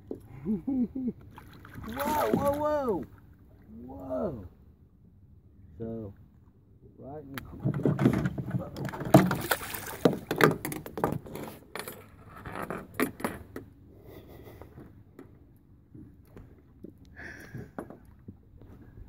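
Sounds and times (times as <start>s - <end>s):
knocks against boat: 7.4s - 11.4s
fish thrashing and splashing: 7.6s - 10.7s.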